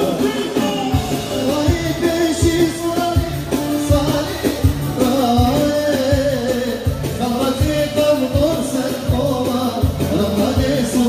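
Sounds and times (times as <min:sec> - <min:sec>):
dance music with singer: 0:00.0 - 0:11.0
steady drum beat: 0:00.0 - 0:11.0.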